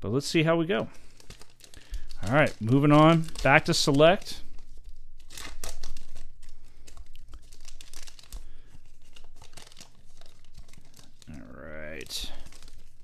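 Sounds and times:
plastic wrapper tearing and crinkling: 0.9 - 13.0.

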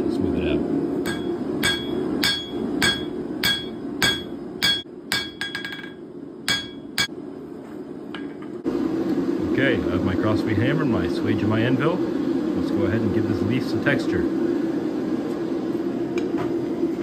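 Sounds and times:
hammer striking hot steel on anvil: 1.0 - 7.2.

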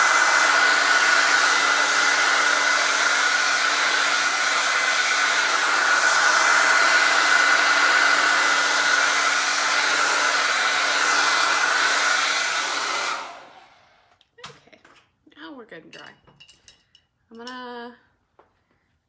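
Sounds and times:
hair dryer running: 0.0 - 14.2.

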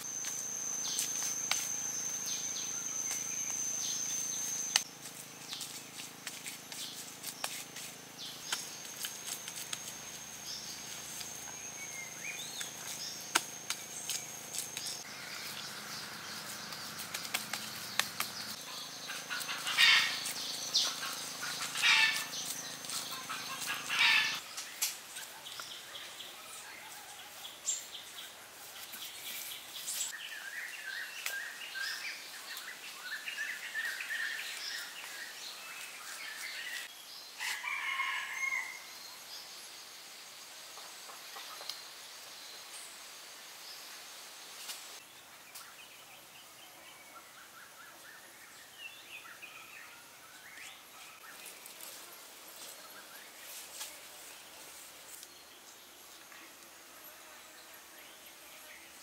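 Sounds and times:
birds calling and chirping: 0.0 - 39.2.

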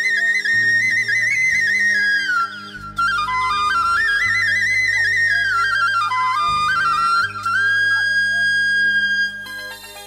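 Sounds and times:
flute melody with trills: 0.0 - 10.0
low bass notes: 0.6 - 8.6.

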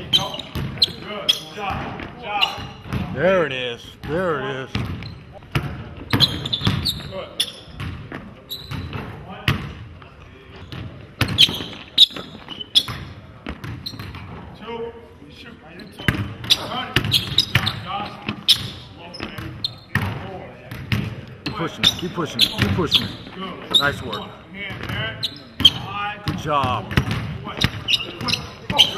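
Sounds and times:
basketball bouncing on hardwood: 0.5 - 0.8, 4.7 - 7.0, 25.6 - 28.9.

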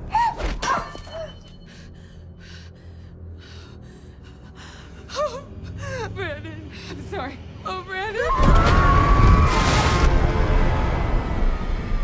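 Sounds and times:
low steady drone: 1.3 - 8.2.

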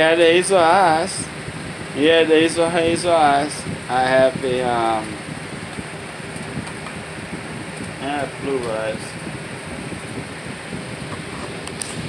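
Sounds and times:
electric fan running: 0.0 - 12.0.

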